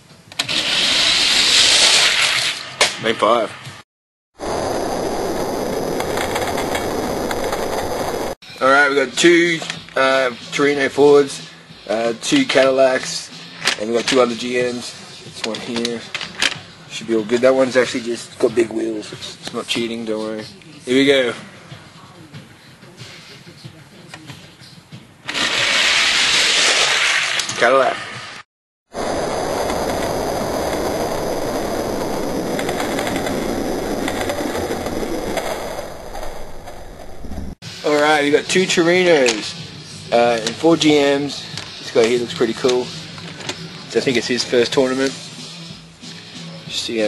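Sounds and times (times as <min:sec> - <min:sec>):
toy cars rolling on plastic track: 0:00.4 - 0:02.6, 0:25.3 - 0:27.7.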